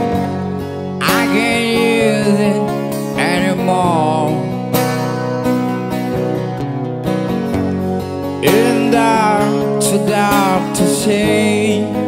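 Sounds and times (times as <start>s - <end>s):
acoustic guitar strumming: 0.0s - 12.0s
man singing: 1.0s - 4.7s, 8.4s - 12.0s.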